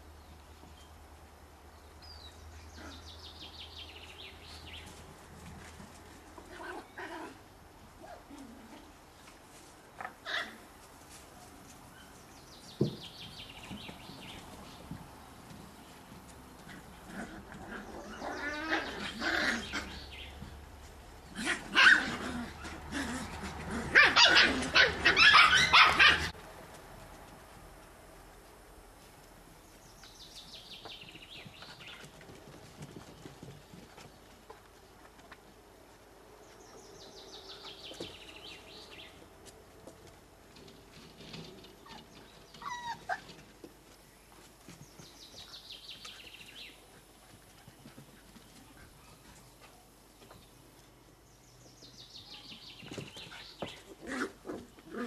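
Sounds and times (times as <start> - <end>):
puppies barking and yipping: 16.6 - 20.5, 21.3 - 26.4, 41.2 - 43.5
puppy whining: 41.8 - 43.4.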